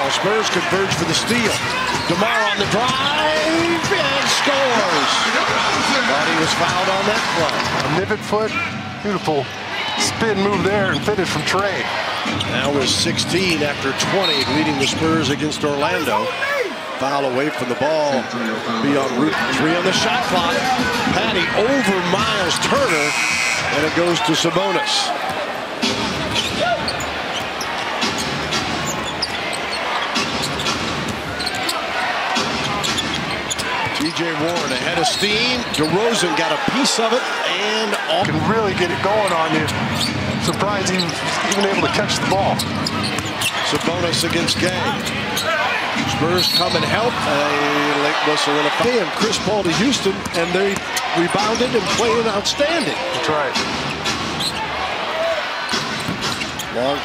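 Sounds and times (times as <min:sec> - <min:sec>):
sneaker squeak on hardwood: 0:26.3 - 0:30.8, 0:42.6 - 0:43.9, 0:53.9 - 0:54.6, 0:56.0 - 0:56.7
basketball bouncing: 0:55.7 - 0:56.7.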